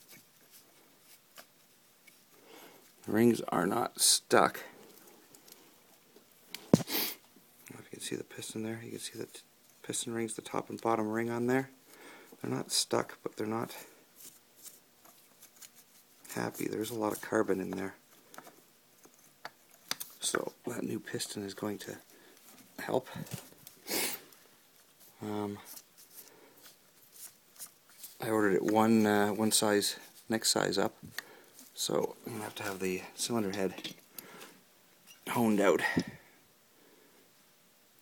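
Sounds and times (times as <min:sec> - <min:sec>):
short sniff: 0:06.8 - 0:07.2, 0:23.8 - 0:24.3
faint handling noise: 0:12.3 - 0:36.2.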